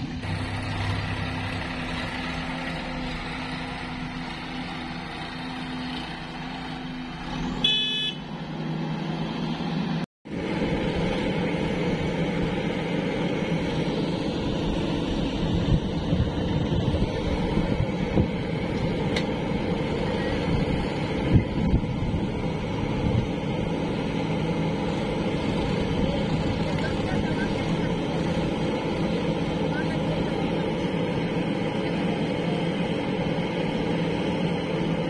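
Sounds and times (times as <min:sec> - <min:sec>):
backhoe engine under load: 0:00.0 - 0:35.0
diesel tractor engine running: 0:00.0 - 0:35.0
horn toot: 0:07.6 - 0:08.3.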